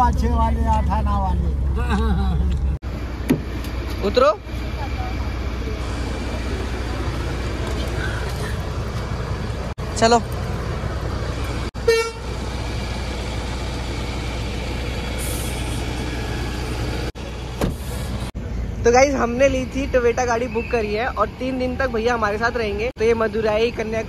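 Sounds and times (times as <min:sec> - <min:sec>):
traffic engine rumble: 0:00.0 - 0:24.0.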